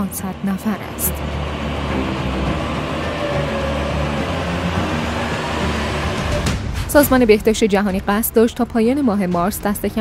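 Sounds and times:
steady low drone hum: 0:00.0 - 0:10.0.

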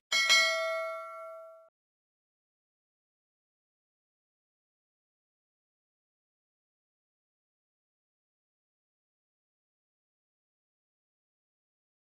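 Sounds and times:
notification bell ding: 0:00.1 - 0:01.7.

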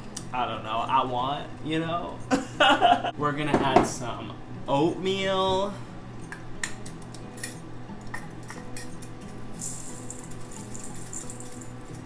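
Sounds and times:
oats poured into metal bowl: 0:09.6 - 0:11.7.

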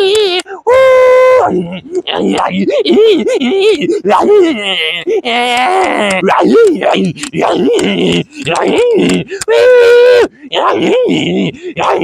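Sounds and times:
man wailing wordlessly: 0:00.0 - 0:12.0.

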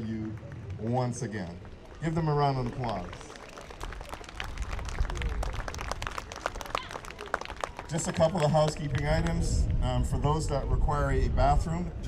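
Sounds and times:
crowd applauding: 0:00.0 - 0:09.5.

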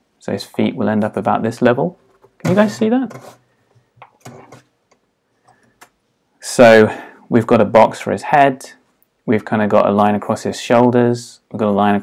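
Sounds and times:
pencil rustling on paper: 0:02.0 - 0:03.5.

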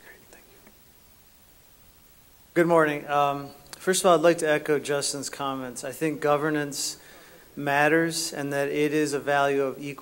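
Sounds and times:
faint whispered words: 0:00.0 - 0:00.8.

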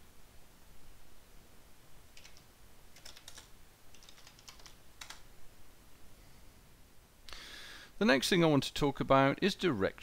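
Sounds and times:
typing on computer keyboard: 0:02.2 - 0:05.2.

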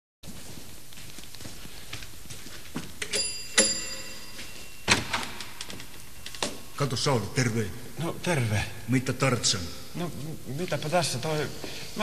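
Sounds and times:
doorbell chime: 0:03.1 - 0:06.8.

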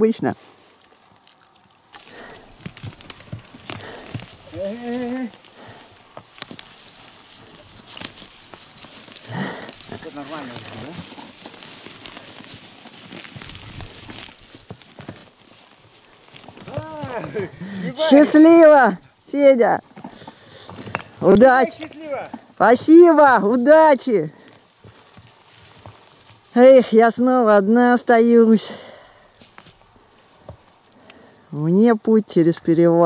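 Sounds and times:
rustling through dry brush: 0:00.0 - 0:33.0
knocks of hooves and tack: 0:00.9 - 0:27.3, 0:29.1 - 0:31.4
short voice calls: 0:16.7 - 0:18.4.

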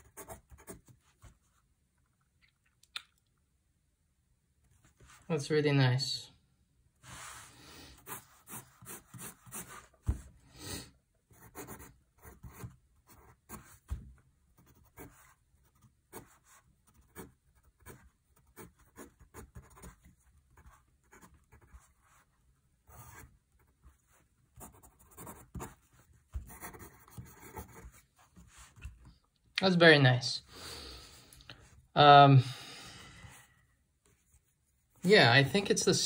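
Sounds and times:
pencil scratching on paper: 0:00.0 - 0:01.4, 0:07.0 - 0:10.3, 0:11.3 - 0:28.9.

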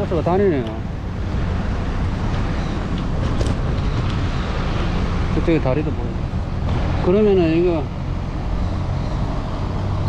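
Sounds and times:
wind buffeting microphone: 0:00.0 - 0:07.1
road traffic noise: 0:00.0 - 0:10.0.

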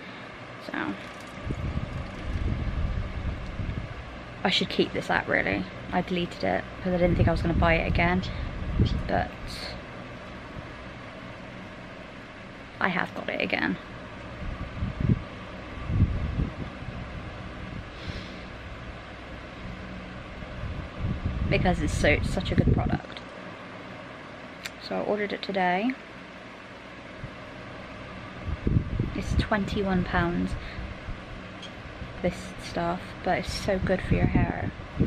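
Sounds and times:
steady background noise: 0:00.0 - 0:35.0
camera handling rumble: 0:01.0 - 0:02.6.

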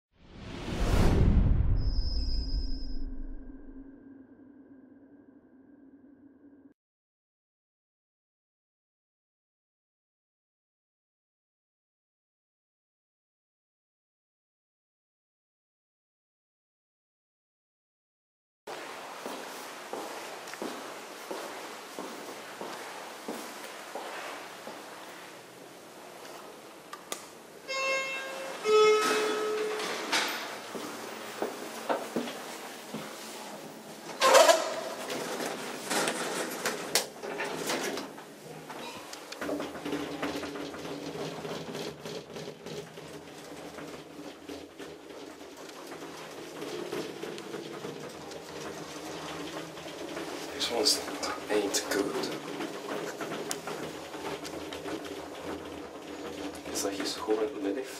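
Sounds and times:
elevator car humming: 0:20.6 - 0:33.0, 0:33.6 - 0:57.7
elevator door sounds: 0:27.6 - 0:32.5, 0:34.1 - 0:57.8
two-note elevator chime: 0:27.7 - 0:30.0.

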